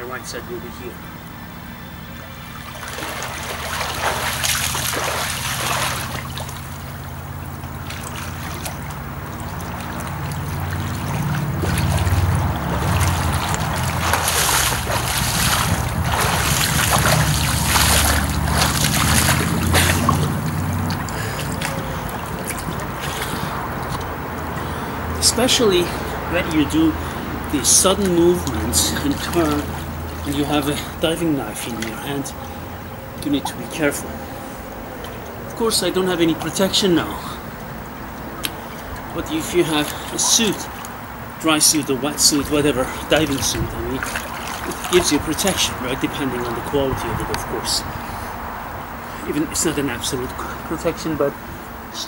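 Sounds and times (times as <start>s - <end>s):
steady low rumble: 0.0s - 50.8s
swimmer splashing water: 0.0s - 52.0s.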